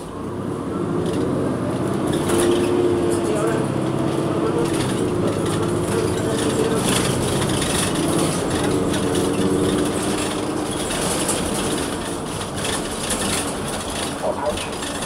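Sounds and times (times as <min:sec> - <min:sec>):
bus engine drone: 0:00.0 - 0:15.0
road rumble: 0:00.0 - 0:15.0.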